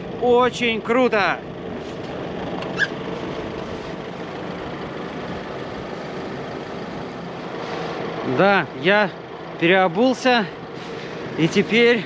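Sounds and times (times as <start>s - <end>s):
pickup engine idling: 0.0s - 12.0s.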